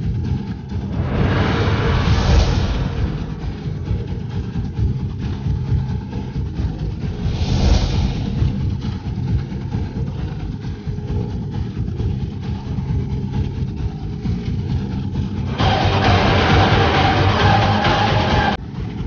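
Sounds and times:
low droning suspense score: 0:00.0 - 0:19.0
whoosh: 0:00.7 - 0:05.4, 0:06.6 - 0:10.2.

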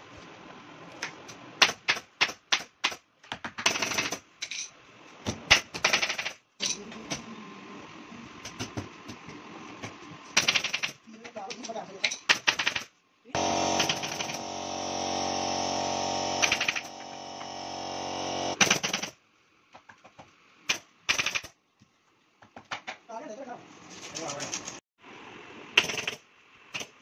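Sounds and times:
pneumatic staple gun firing: 0:13.4 - 0:15.1, 0:16.0 - 0:19.1
steady machine hum: 0:13.4 - 0:18.6.

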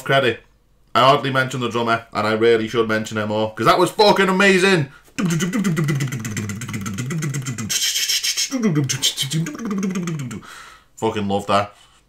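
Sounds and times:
gliding sung voice: 0:05.2 - 0:10.5
man beatboxing drum sounds: 0:05.2 - 0:10.5
hissing vocal cymbal burst: 0:05.4 - 0:10.6.

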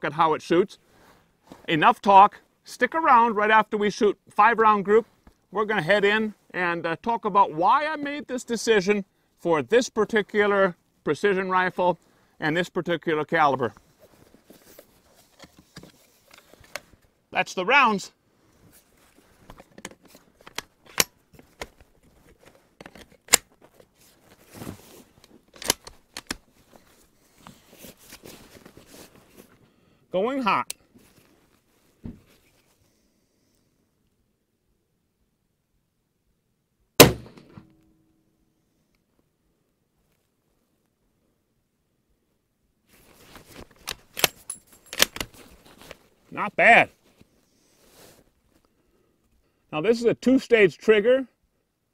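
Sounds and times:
hands and clothing rustling: 0:13.6 - 0:17.2, 0:18.4 - 0:22.8, 0:23.5 - 0:29.6, 0:30.9 - 0:32.9, 0:42.9 - 0:48.8
rifle bolt metallic clicks: 0:20.5 - 0:21.2, 0:22.8 - 0:23.5, 0:25.6 - 0:26.4, 0:43.9 - 0:45.3.

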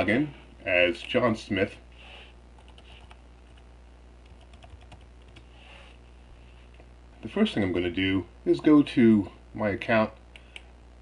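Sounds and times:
faint keyboard typing: 0:02.6 - 0:03.6, 0:04.2 - 0:05.5.

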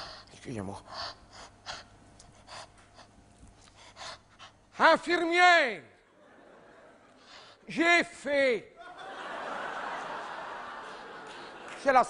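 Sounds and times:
man breathing: 0:00.0 - 0:04.7.

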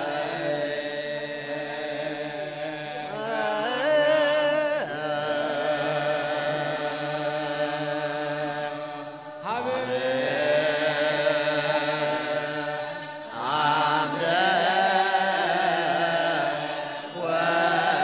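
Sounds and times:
chorus singing liturgical chant: 0:00.0 - 0:18.0.

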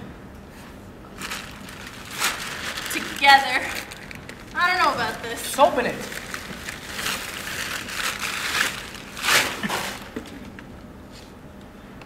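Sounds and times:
paper wrapping rustling and crinkling: 0:01.1 - 0:10.6.

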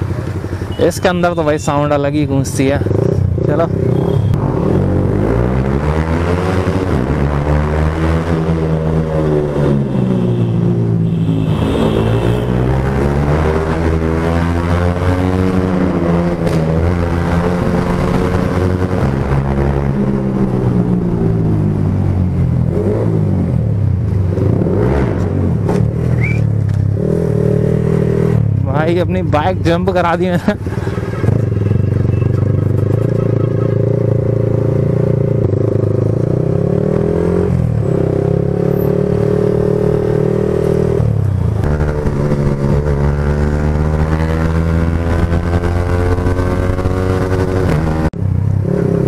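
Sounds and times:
motorcycle engine revving: 0:00.0 - 0:49.0.

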